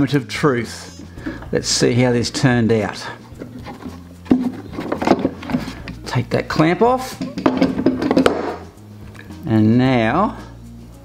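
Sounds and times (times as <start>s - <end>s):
metal clamp knocking on wood: 7.2s - 8.6s.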